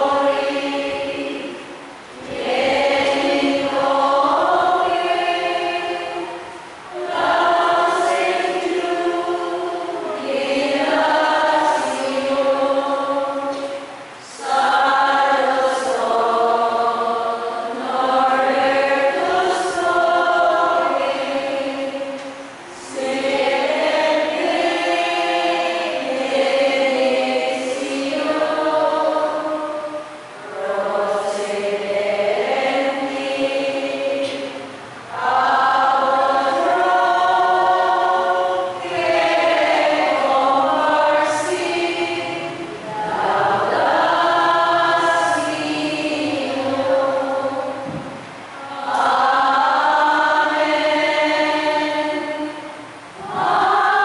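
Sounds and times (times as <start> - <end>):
group singing a hymn: 0.0 - 54.0.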